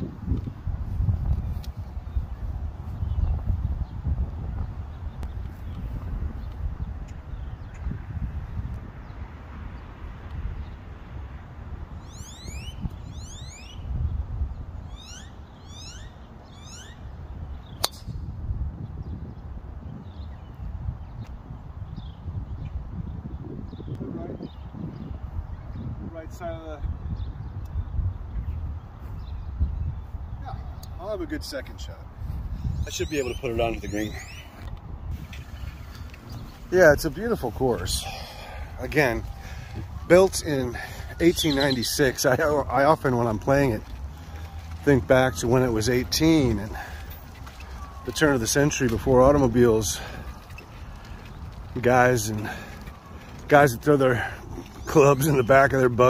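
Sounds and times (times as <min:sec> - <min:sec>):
bird whistling call: 0:12.0 - 0:13.9, 0:14.9 - 0:17.0, 0:32.9 - 0:34.6, 0:41.2 - 0:42.0
golf club striking ball: 0:17.8 - 0:18.2
man speaking: 0:40.0 - 0:43.8, 0:44.8 - 0:46.8, 0:48.1 - 0:50.1, 0:53.5 - 0:56.0.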